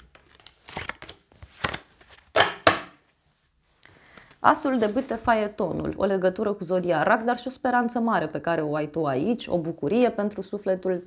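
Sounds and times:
cards shuffling: 0.0s - 3.5s.

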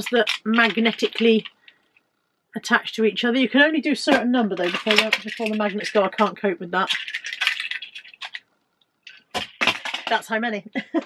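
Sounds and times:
plastic toy cars clacking: 0.0s - 1.8s, 4.0s - 8.5s, 9.1s - 10.4s.

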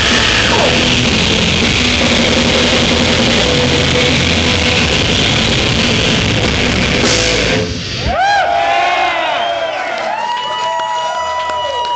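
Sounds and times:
distorted electric guitars: 0.0s - 8.1s
drums and cymbals: 0.0s - 8.3s.

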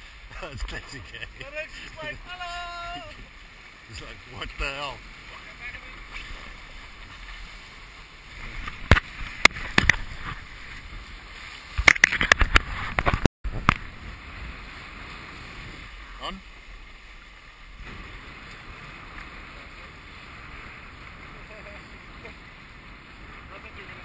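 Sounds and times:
water rushing past boat: 0.0s - 24.0s
wind on microphone: 0.6s - 16.2s, 16.9s - 24.0s.

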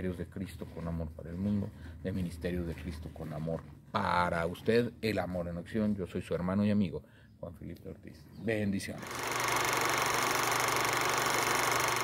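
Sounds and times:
rapid mechanical clatter: 9.0s - 12.0s.

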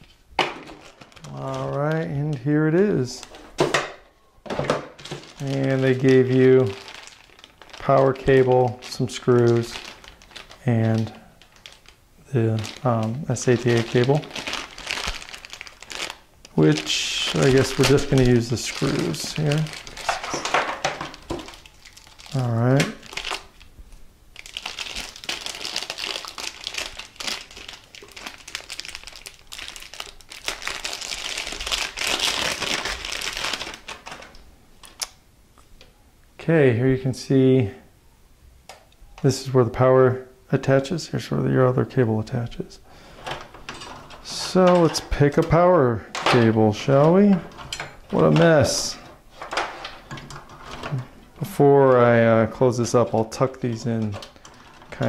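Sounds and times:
plastic bag crinkling: 0.0s - 3.8s, 4.5s - 35.1s, 43.0s - 55.0s
cables and connectors rustling: 0.0s - 35.9s, 42.4s - 55.0s.

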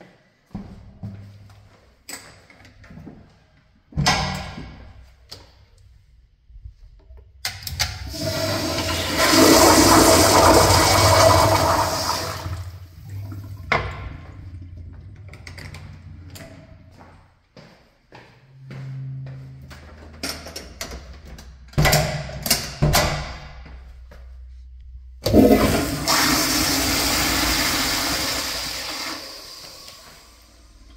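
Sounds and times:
toilet flushing: 7.8s - 16.4s, 25.2s - 30.9s.

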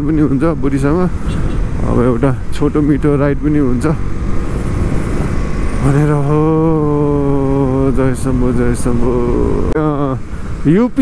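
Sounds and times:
man talking: 0.0s - 1.2s, 1.8s - 4.0s, 5.8s - 11.0s
motorcycle engine rumble: 0.0s - 11.0s.

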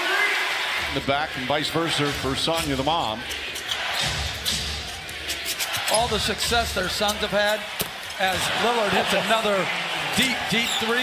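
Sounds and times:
indoor arena crowd din: 0.0s - 11.0s.

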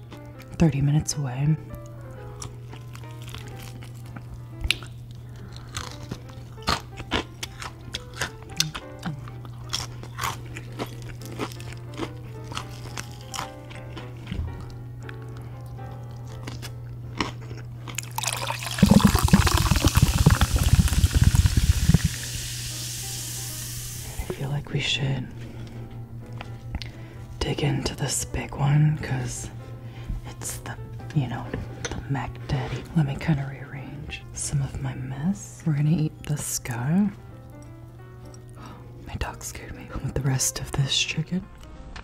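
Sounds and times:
crunchy chewing: 1.8s - 22.4s
drink pouring into glass: 18.0s - 24.1s
fizz hiss: 18.2s - 24.3s.

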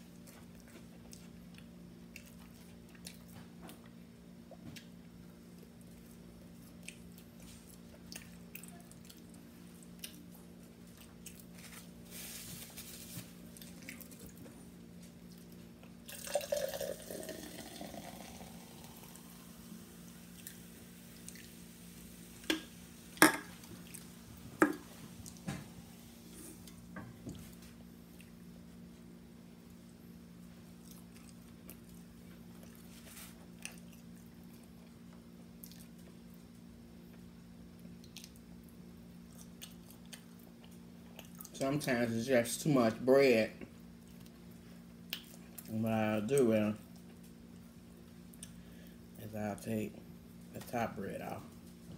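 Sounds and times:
steady low hum: 0.0s - 51.9s
quiet chewing with mouth clicks: 0.1s - 11.8s, 13.5s - 16.0s, 20.3s - 21.6s, 28.0s - 28.4s, 29.7s - 41.6s, 43.9s - 45.7s, 46.8s - 49.0s.

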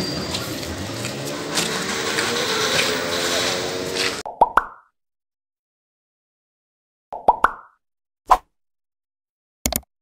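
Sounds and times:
cartoon pop sound effect: 4.3s - 4.9s.

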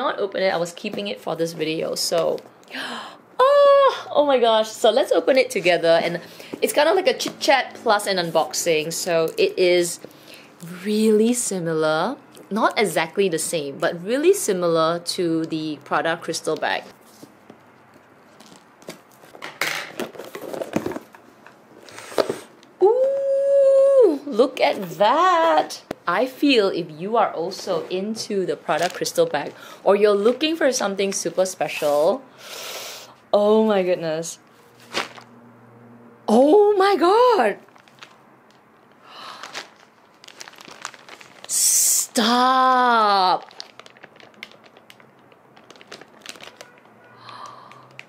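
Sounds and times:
packaging crinkling and rustling: 16.4s - 22.5s, 28.6s - 29.6s, 34.8s - 35.3s, 37.6s - 41.8s, 42.6s - 48.0s.

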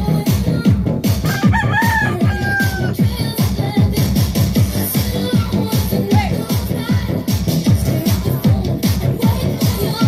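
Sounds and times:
electronic dance music: 0.0s - 10.0s
rooster crowing: 1.2s - 3.0s.

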